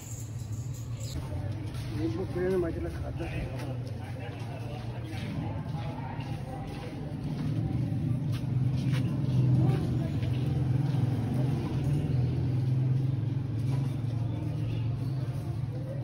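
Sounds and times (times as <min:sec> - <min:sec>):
low engine hum: 0:01.1 - 0:16.0.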